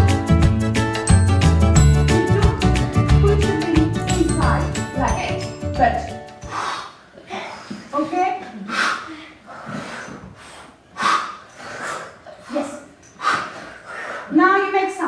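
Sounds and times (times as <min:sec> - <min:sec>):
children's forceful breaths out: 0:06.4 - 0:14.4.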